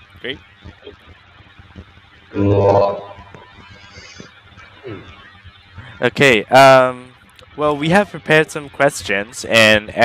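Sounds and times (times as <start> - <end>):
video call background noise: 0.0 - 10.0.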